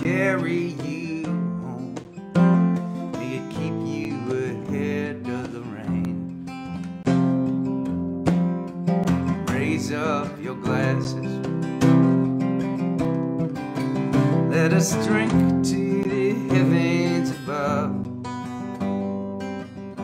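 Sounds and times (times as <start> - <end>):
man singing: 0.0 - 6.9, 9.1 - 12.2, 14.2 - 18.1
acoustic guitar strumming: 0.0 - 20.0.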